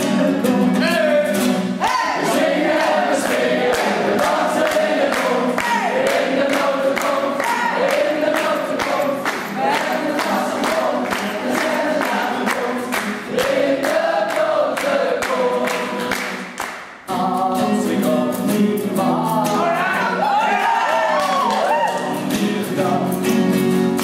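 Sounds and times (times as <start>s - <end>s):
many voices singing together: 0.0s - 24.0s
strummed acoustic guitars: 0.0s - 24.0s
rhythmic claps: 2.1s - 19.5s, 20.9s - 24.0s.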